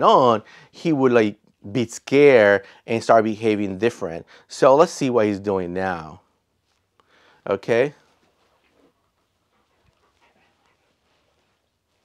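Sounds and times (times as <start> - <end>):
dog moving softly: 8.0 - 12.0.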